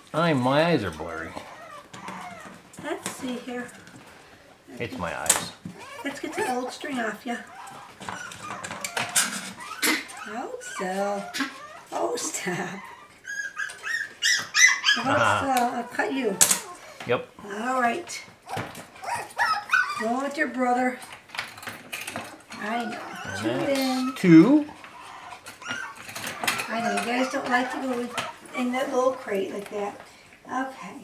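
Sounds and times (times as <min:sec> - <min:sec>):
puppy whining and yelping: 0:01.2 - 0:02.8, 0:05.7 - 0:17.0, 0:18.4 - 0:29.0.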